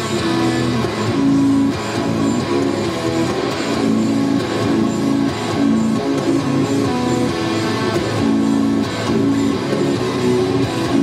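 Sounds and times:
electric guitar picked notes: 0.0s - 11.0s.

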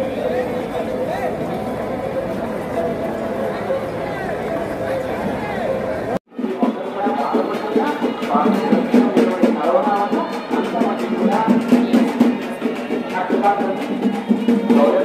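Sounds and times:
crowd noise: 0.0s - 15.0s
music with drums: 6.3s - 15.0s.

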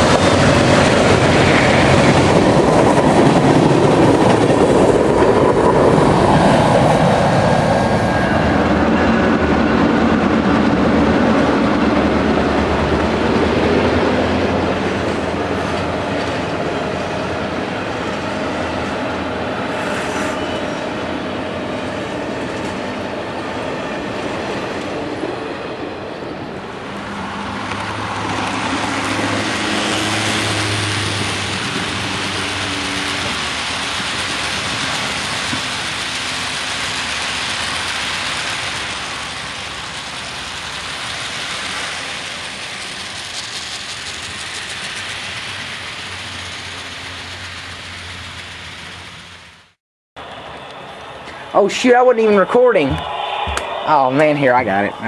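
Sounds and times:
train rumbling and rattling: 0.0s - 55.0s.

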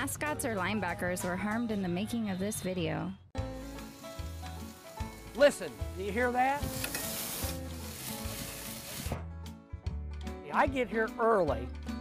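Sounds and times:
background music: 0.0s - 12.0s
meat sizzling on a grill: 3.4s - 9.2s.

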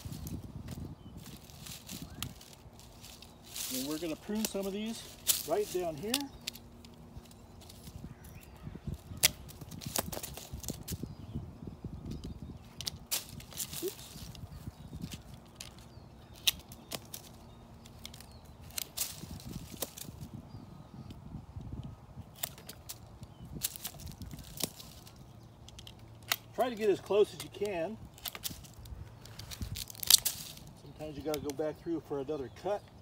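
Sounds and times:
rustling of stems and mulch: 0.0s - 33.0s.

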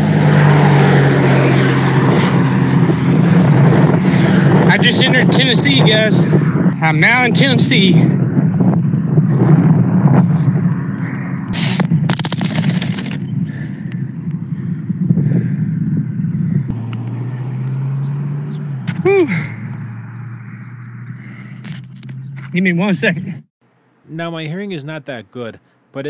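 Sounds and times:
wind rumbling on microphone: 0.0s - 23.5s
sharp rattles and knocks: 11.8s - 13.3s
man shouting woo: 19.0s - 19.4s.

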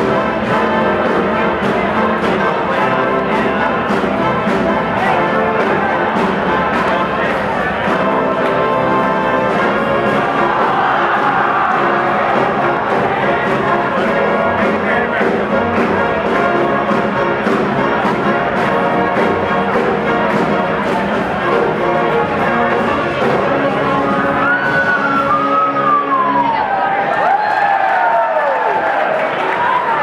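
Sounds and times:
trumpets and trombones: 0.0s - 26.6s
big band playing: 0.0s - 30.0s.

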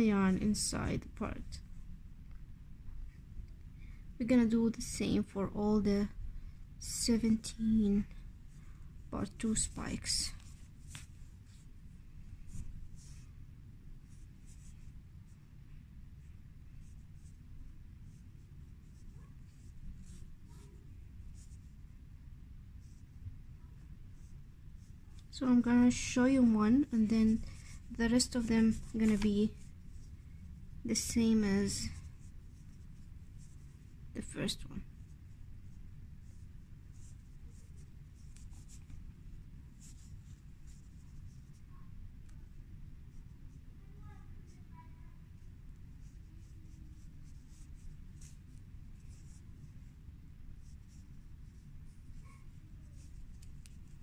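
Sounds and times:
low steady hum: 0.0s - 54.0s
low steady rumble: 0.0s - 54.0s
scratchy rustling of yarn: 6.8s - 54.0s
yarn drawn through fabric: 45.4s - 54.0s.

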